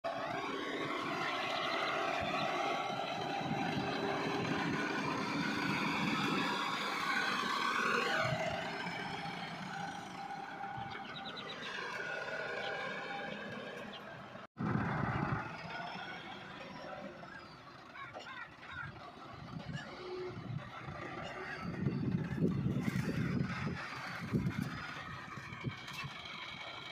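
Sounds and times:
tractor diesel engine under load: 0:00.0 - 0:26.9.

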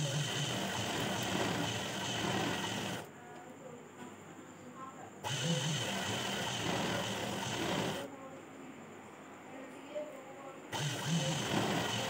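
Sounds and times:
sewing machine stitching fabric: 0:00.0 - 0:03.1, 0:05.2 - 0:08.1, 0:10.7 - 0:12.0.

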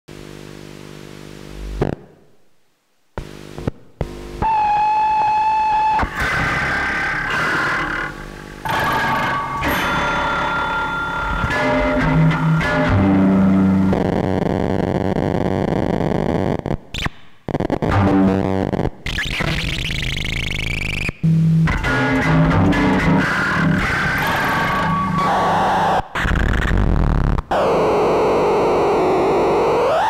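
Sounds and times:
harsh distorted glitchy noise: 0:04.4 - 0:30.0
held ringing tone: 0:08.6 - 0:13.0.

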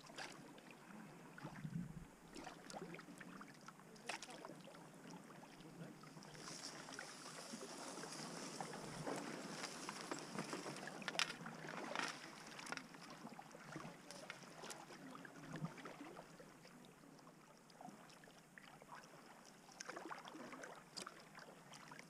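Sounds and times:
paddle dipping and water splashing: 0:00.0 - 0:22.0.

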